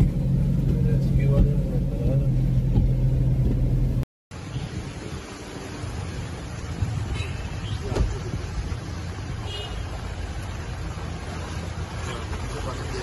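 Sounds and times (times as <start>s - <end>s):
car rumble from inside cabin: 0.0s - 5.0s, 5.9s - 13.0s
outdoor noise: 0.0s - 13.0s.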